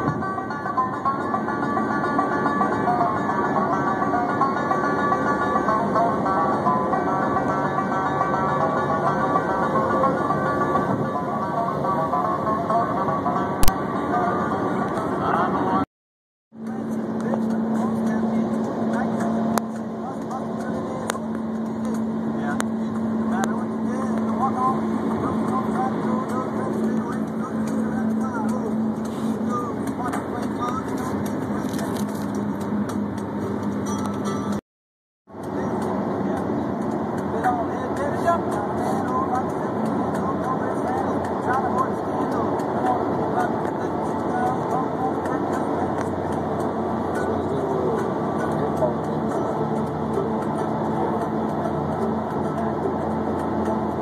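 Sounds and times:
road and tyre noise in car: 0.0 - 15.9, 16.6 - 34.6, 35.3 - 54.0.

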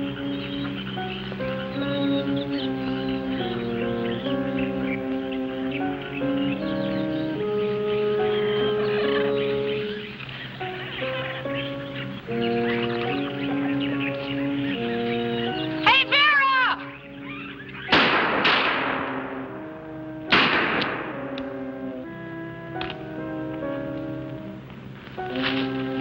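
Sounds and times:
dramatic orchestral film music: 0.0 - 26.0
shrill call rising and falling: 11.4 - 17.9
echoing gunshots: 17.9 - 19.6, 20.3 - 21.3.

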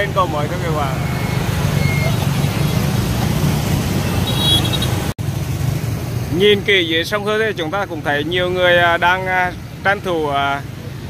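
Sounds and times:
motorbike traffic rumble: 0.0 - 11.0
short high beep: 1.0 - 2.2.

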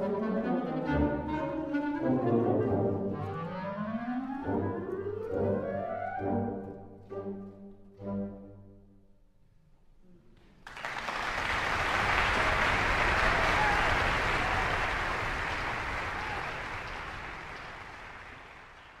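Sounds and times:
audience applause: 10.6 - 19.0.

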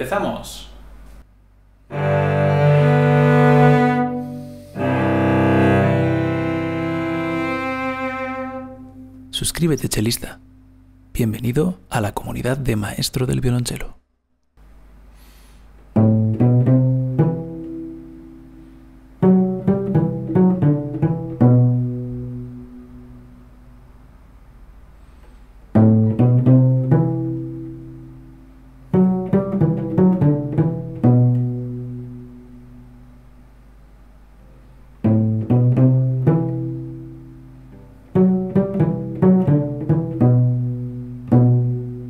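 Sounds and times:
faint room noise: 0.0 - 42.0
cello bowed notes: 1.8 - 9.4, 15.9 - 23.7, 25.7 - 33.2, 35.0 - 42.0.

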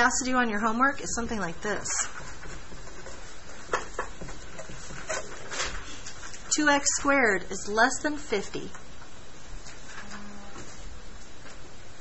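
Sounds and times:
marker squeaking on paper: 4.9 - 6.0.

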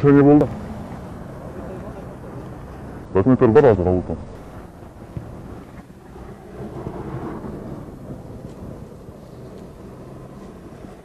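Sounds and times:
muffled car engine rumble: 0.2 - 11.0.

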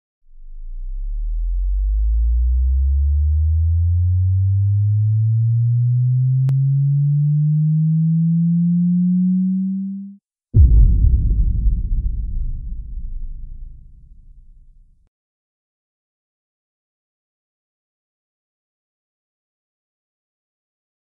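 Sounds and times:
synthetic tone rising in pitch: 0.9 - 10.7.

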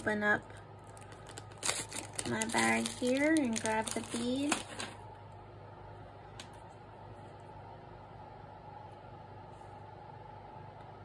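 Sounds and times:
room tone hum: 0.0 - 11.0.

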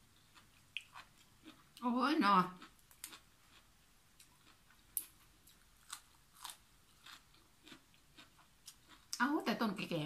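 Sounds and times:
crunching raw vegetables: 2.5 - 9.2.

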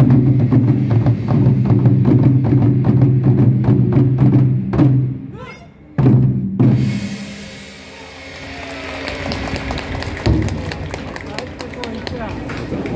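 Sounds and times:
taiko drum hits: 0.0 - 5.2, 6.0 - 11.1
crowd voices: 7.7 - 12.9.

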